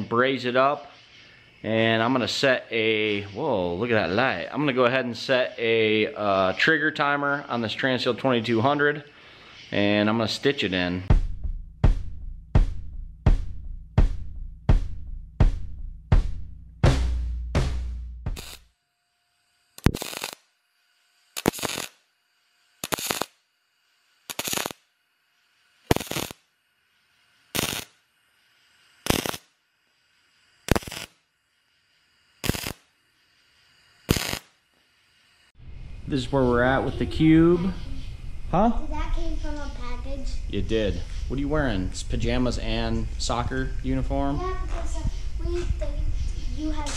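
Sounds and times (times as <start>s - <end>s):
music with steady drum beat: 11.1s - 18.6s
welding arc bursts: 18.3s - 18.8s, 19.7s - 20.6s, 21.2s - 25.0s, 25.6s - 36.6s.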